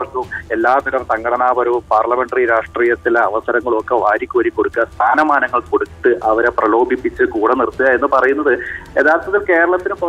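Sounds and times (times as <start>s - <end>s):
person talking over telephone: 0.0s - 10.0s.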